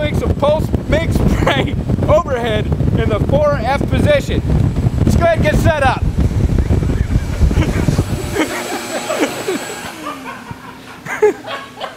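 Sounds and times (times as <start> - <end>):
man laughing: 1.2 - 1.8, 6.6 - 11.9.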